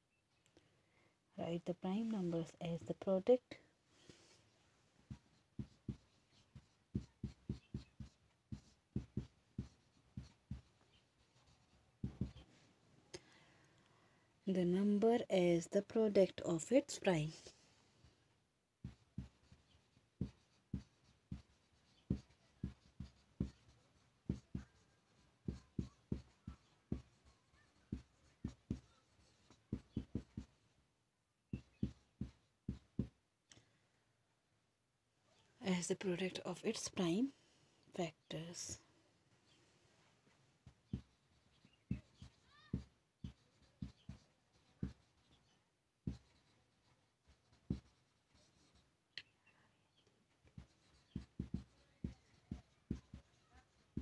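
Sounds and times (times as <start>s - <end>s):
marker pen scratching on paper: 5.0s - 12.6s, 18.8s - 30.7s, 31.5s - 33.2s, 40.6s - 49.0s, 50.3s - 54.0s.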